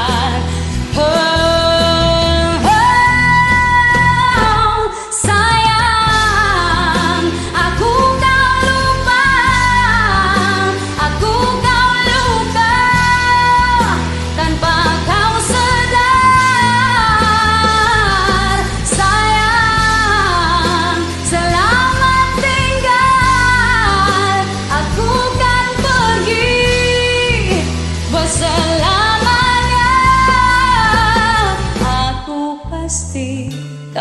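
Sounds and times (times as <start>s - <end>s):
pop-rock ballad backing track: 0.0s - 34.0s
woman singing: 0.0s - 34.0s.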